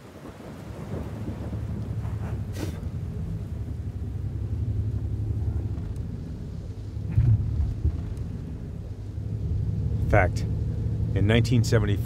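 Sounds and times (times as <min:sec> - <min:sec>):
car interior low rumble: 0:00.0 - 0:12.0.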